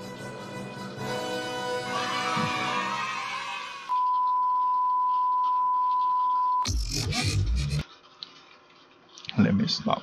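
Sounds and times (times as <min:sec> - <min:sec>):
loud bass-heavy burst: 0:06.7 - 0:07.8.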